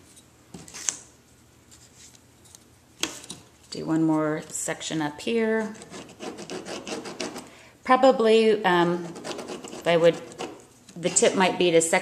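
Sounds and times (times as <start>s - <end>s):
pen scratching on cardstock: 5.8s - 7.4s, 9.0s - 11.4s.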